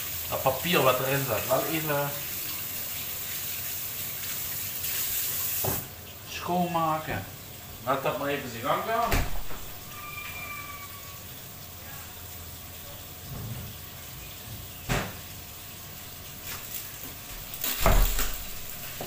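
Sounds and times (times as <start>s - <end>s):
frying pan sizzling: 0.0s - 19.0s.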